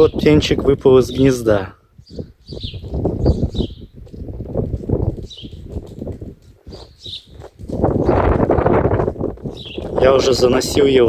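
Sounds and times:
sparrow chirping: 0.0 - 0.4, 2.0 - 4.2, 5.1 - 5.9, 6.6 - 8.8, 9.4 - 11.0.

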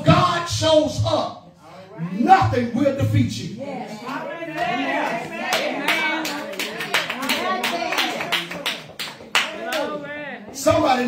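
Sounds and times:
rhythmic hand clapping: 5.0 - 9.9.

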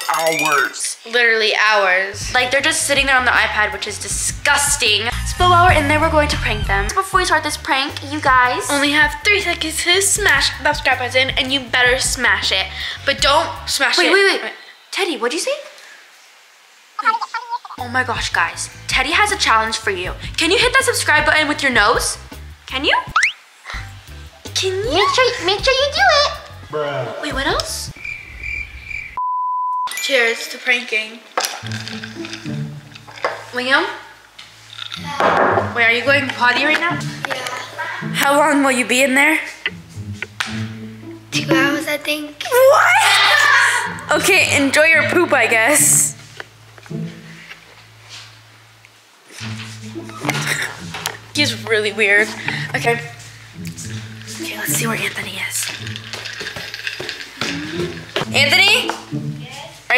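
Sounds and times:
censor bleep tone: 29.0 - 30.0.

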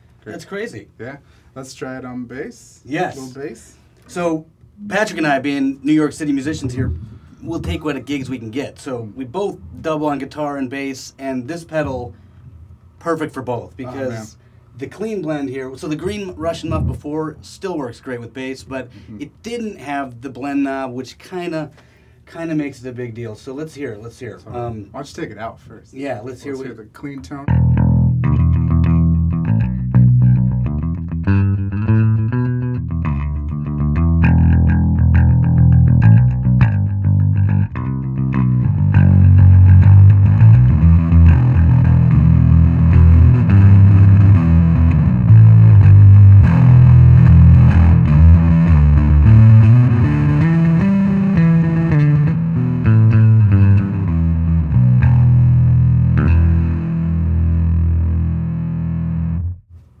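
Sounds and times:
electric bass with fuzz: 27.5 - 59.7.

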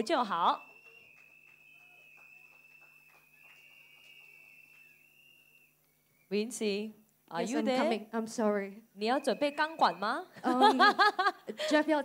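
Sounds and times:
faint audience hand claps: 0.5 - 5.9.

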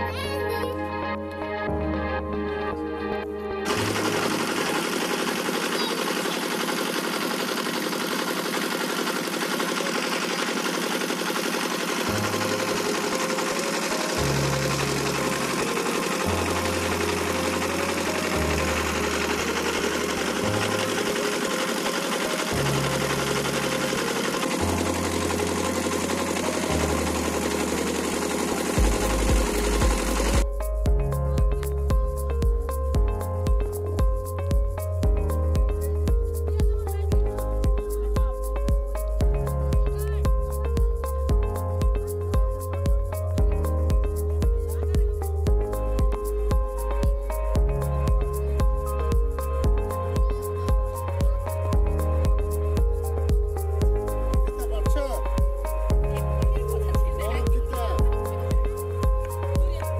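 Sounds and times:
background music with bass line: 0.0 - 4.9, 12.0 - 59.9
boat engine running: 3.5 - 59.9.

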